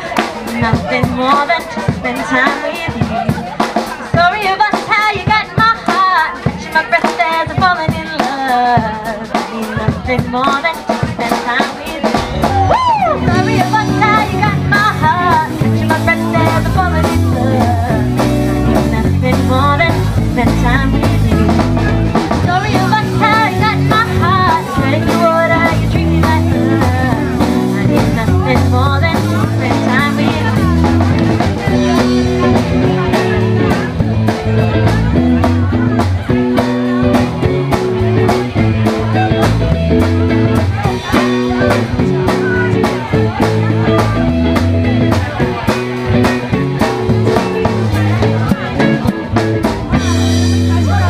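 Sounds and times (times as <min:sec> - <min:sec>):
bass guitar: 0:00.0 - 0:51.0
drum kit beat: 0:00.0 - 0:51.0
electric guitar: 0:00.0 - 0:51.0.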